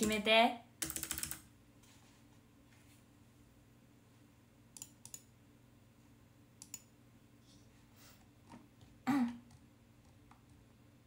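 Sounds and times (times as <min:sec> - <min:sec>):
faint steady hum: 0:00.0 - 0:11.0
computer clicks: 0:00.8 - 0:01.4, 0:04.7 - 0:05.3, 0:06.6 - 0:06.9.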